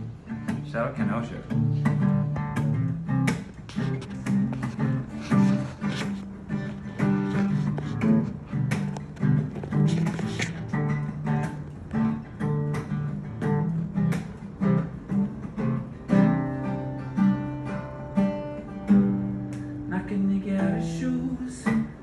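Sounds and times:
acoustic guitar strumming chords: 0:00.0 - 0:22.0.

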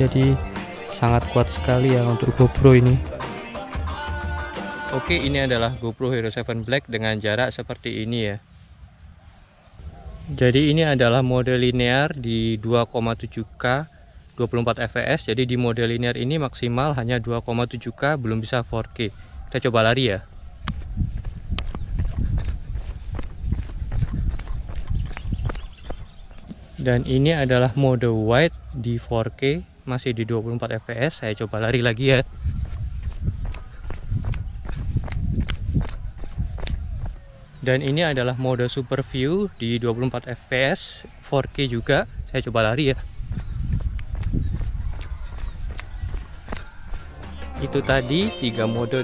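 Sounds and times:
running footsteps on pavement: 0:20.3 - 0:26.8, 0:32.1 - 0:38.0, 0:42.8 - 0:49.0.

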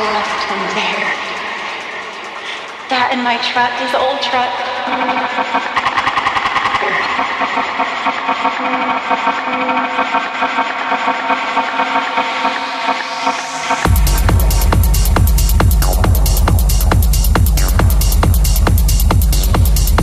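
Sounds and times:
techno synth chords: 0:00.0 - 0:20.0.

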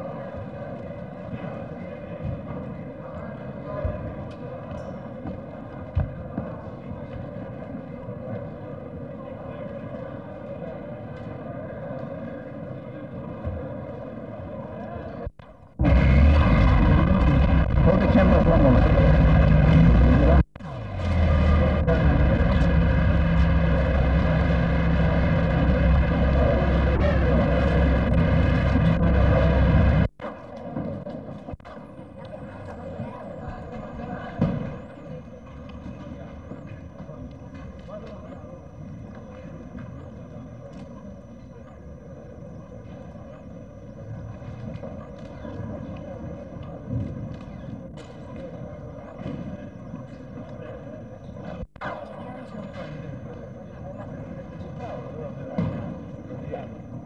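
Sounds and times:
crowd murmuring: 0:00.0 - 0:57.0
loud low rumbling din: 0:15.7 - 0:30.1.

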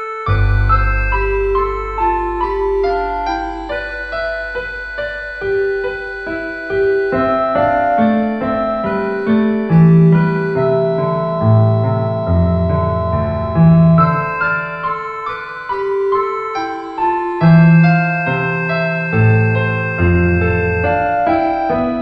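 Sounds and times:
deep piano bass notes: 0:00.0 - 0:22.0
slow lyrical piano music: 0:00.0 - 0:22.0.

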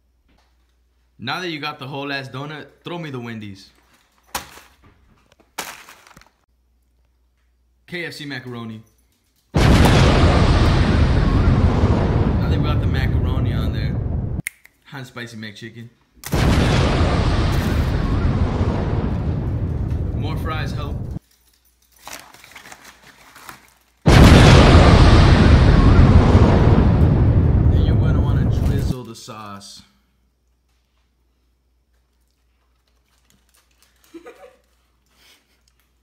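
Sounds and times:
paper wrapper crinkling: 0:03.7 - 0:06.4, 0:21.2 - 0:24.1, 0:32.1 - 0:36.0
light clicks and rustles: 0:08.4 - 0:09.6, 0:21.2 - 0:24.0, 0:31.9 - 0:36.0.

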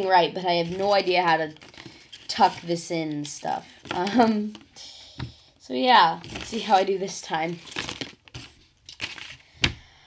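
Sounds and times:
paper rustling: 0:00.5 - 0:02.8, 0:06.2 - 0:09.8.

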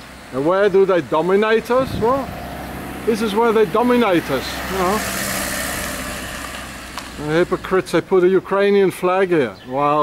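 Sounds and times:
vehicle passing by: 0:00.1 - 0:08.3.

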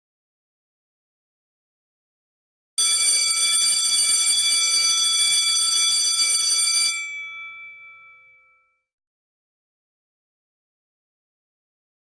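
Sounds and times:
electric bell ringing: 0:02.8 - 0:08.7.

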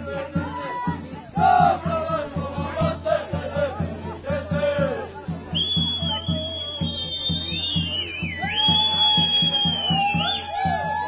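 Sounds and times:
folk dance music: 0:00.0 - 0:11.0.

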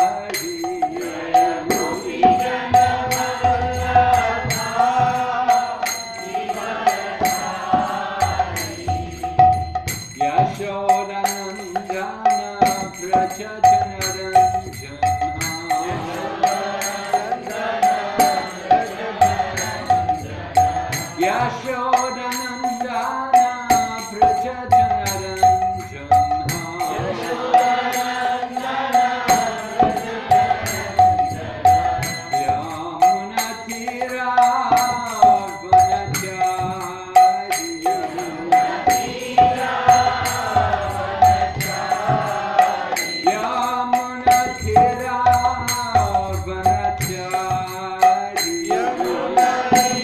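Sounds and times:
brass hand cymbals ringing: 0:00.0 - 0:50.0
devotional chanting: 0:00.0 - 0:50.0.

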